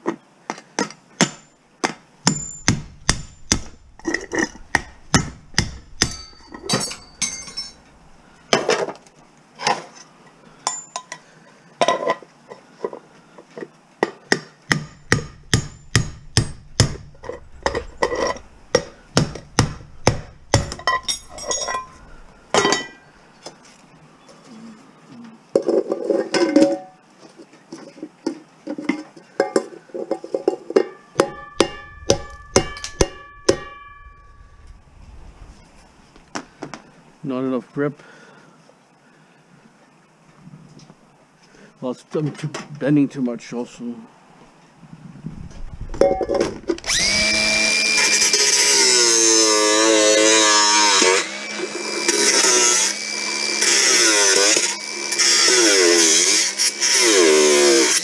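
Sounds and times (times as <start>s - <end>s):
hammer striking metal pan: 2.3s - 7.7s, 14.7s - 21.9s, 30.8s - 34.4s
struck metal pot ringing: 2.3s - 7.9s, 30.8s - 34.8s
metal scraping: 2.3s - 9.0s, 14.9s - 23.8s, 30.0s - 36.2s.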